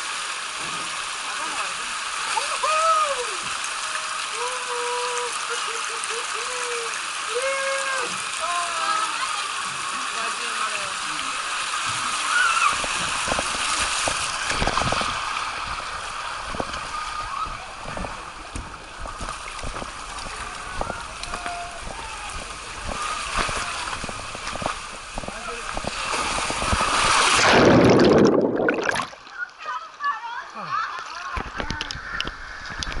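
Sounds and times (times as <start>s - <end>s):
water rushing down slide: 0.0s - 29.7s
loud splash into pool: 11.8s - 18.4s, 25.7s - 29.2s.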